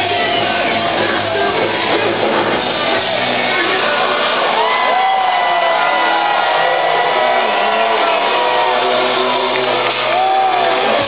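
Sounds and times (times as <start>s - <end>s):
audience shouting: 0.0s - 11.0s.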